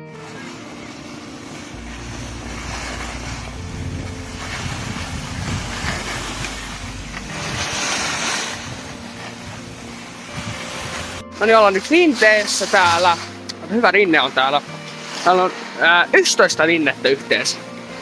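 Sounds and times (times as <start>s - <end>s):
wind buffeting microphone: 0.0s - 13.4s
skis scraping over snow: 0.0s - 18.0s.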